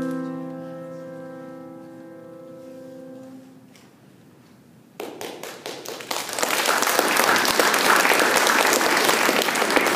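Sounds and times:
audience applause: 5.0 - 9.9.

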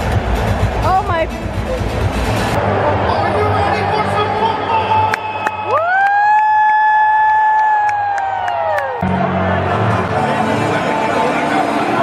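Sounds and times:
stadium crowd cheering: 2.6 - 12.0
sharp claps: 5.1 - 6.5.

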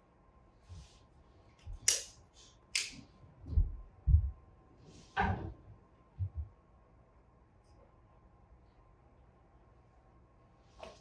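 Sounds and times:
dull low thumps: 3.4 - 4.5.

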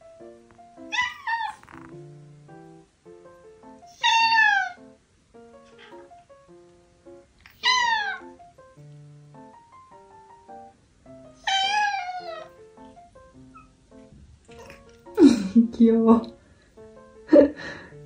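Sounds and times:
light background music: 0.0 - 18.0
cat meowing: 0.9 - 1.9, 3.9 - 4.8, 7.5 - 8.4, 11.4 - 12.5, 14.5 - 14.9.

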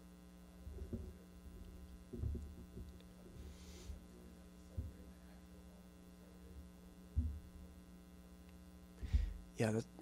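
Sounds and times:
electrical mains hum: 0.0 - 10.0
short low thump: 2.1 - 2.9, 7.2 - 7.5, 9.0 - 9.4.

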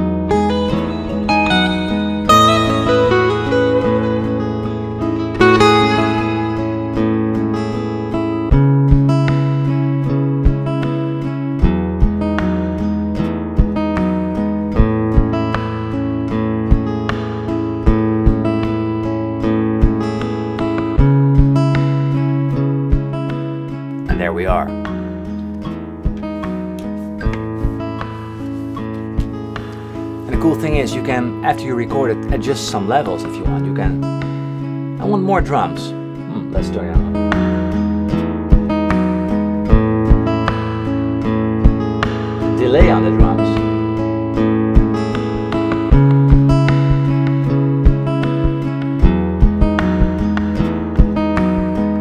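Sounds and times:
looped bass and chords: 0.0 - 32.5, 33.2 - 52.0
guitar lead lines: 0.0 - 52.0
taps on guitar body: 44.8 - 51.7.

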